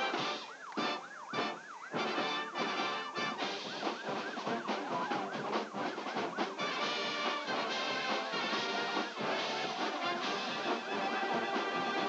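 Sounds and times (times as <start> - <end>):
marching band brass playing: 0.0 - 12.0.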